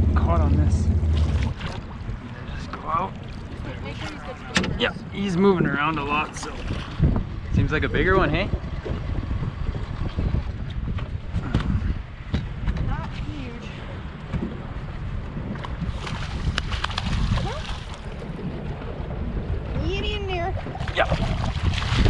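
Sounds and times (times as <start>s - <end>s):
waves slapping boat hull: 0.0s - 22.0s
wind buffeting microphone: 0.0s - 22.0s.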